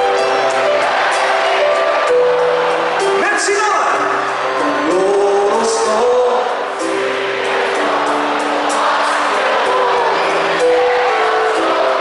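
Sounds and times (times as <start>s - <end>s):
live band through pa: 0.0s - 12.0s.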